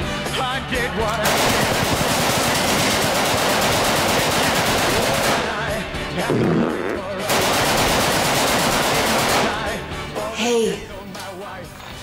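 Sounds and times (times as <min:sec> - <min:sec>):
rapid automatic gunfire: 0:01.2 - 0:05.7, 0:07.3 - 0:09.8.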